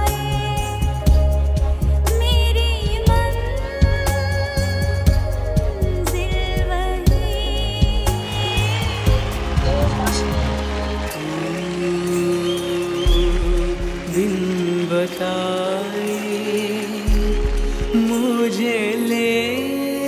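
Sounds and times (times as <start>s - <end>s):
background music with deep bass: 0.0s - 20.0s.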